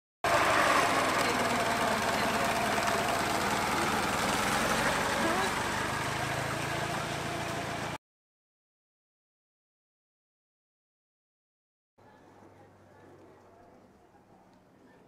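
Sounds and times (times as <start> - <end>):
old car engine running: 0.2 - 8.0
people talking: 1.0 - 4.1, 5.1 - 5.8, 12.0 - 15.0.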